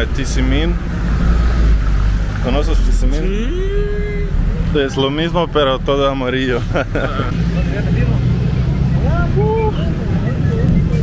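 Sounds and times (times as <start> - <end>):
faint voices: 2.2 - 11.0.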